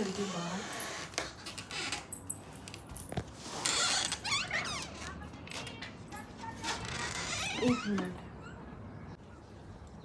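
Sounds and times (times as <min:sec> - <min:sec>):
door hinge squeaking: 0:06.6 - 0:08.8.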